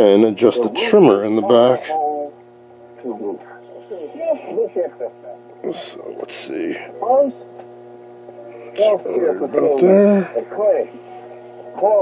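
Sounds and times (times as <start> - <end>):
mains hum: 0.0 - 12.0.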